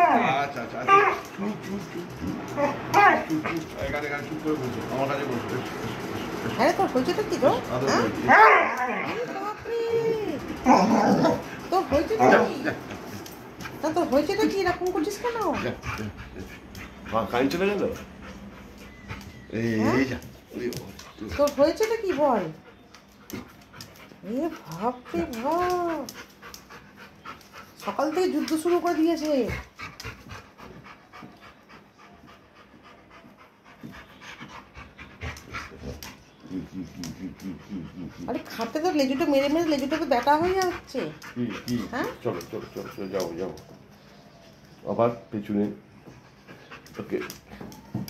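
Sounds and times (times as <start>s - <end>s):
dog whining: 0.0s - 3.7s, 7.7s - 12.7s, 18.1s - 20.2s, 47.4s - 48.0s
dog moaning: 0.0s - 13.0s, 13.6s - 20.3s, 21.2s - 30.1s, 34.7s - 43.6s
dog panting: 0.1s - 8.4s, 9.0s - 48.0s.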